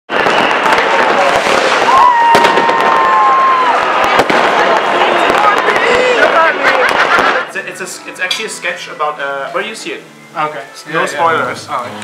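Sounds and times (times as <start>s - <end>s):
firework whistle: 0.1s - 7.6s
fireworks crackling and banging: 0.1s - 10.0s.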